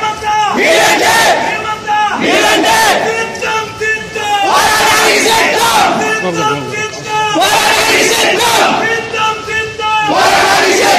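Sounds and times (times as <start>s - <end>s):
crowd shouting: 0.0s - 10.9s.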